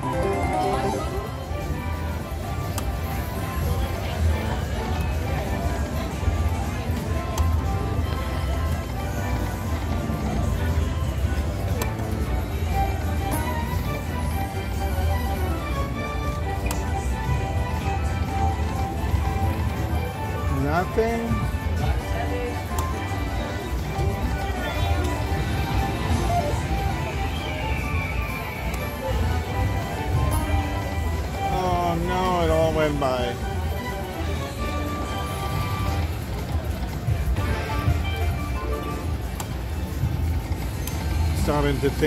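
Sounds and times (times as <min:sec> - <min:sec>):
slot machine jingles and chimes: 0:00.0 - 0:02.7
other gaming machines: 0:00.0 - 0:21.9, 0:33.4 - 0:42.0.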